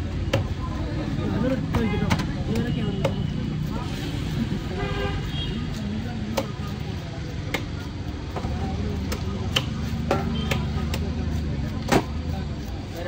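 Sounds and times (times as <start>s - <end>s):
hubbub of voices: 0.0s - 13.0s
road traffic: 0.0s - 13.0s
vehicle horns tooting: 4.7s - 5.7s
knife chopping on wooden block: 7.4s - 12.2s.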